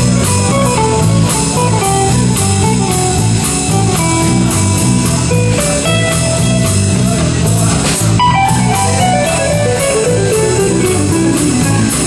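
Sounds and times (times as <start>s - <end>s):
electric guitar descending run: 0.0s - 12.0s
repeating bass line: 0.0s - 12.0s
rock band playing: 0.0s - 12.0s
steady cymbal beat: 0.0s - 12.0s.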